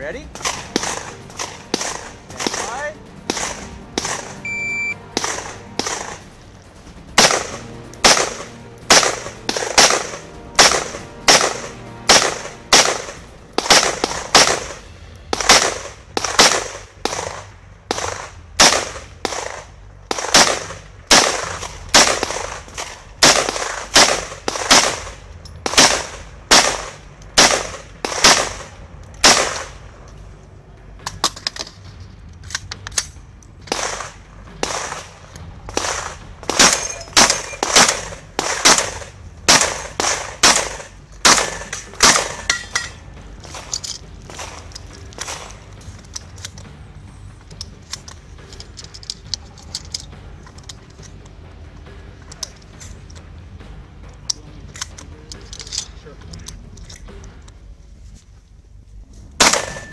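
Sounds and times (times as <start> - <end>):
rifle gunshots echoing: 0.3 - 4.4, 5.0 - 6.4, 7.1 - 30.0, 33.7 - 45.7, 59.4 - 59.9
shotgun shots: 0.3 - 6.3, 7.2 - 29.8, 33.7 - 42.6, 59.4 - 59.9.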